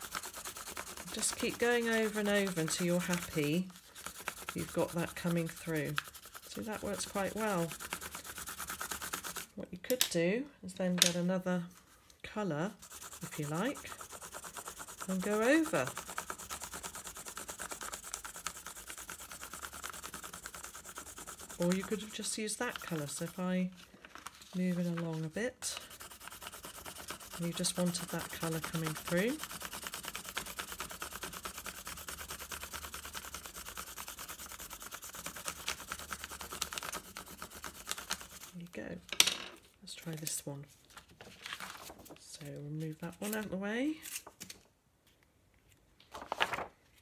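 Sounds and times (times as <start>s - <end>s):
pencil rubbing on paper: 0.0s - 9.5s, 12.7s - 23.5s, 24.5s - 38.6s.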